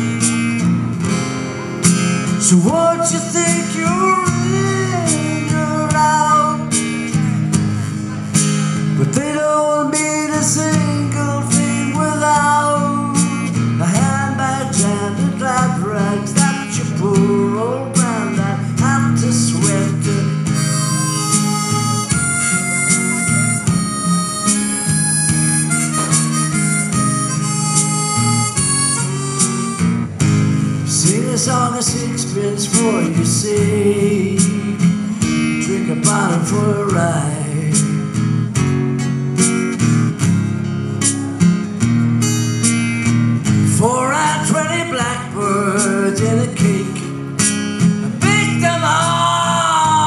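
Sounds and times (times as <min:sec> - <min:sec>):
strummed acoustic guitar: 0:00.0 - 0:50.0
harmonica solo: 0:20.4 - 0:30.9.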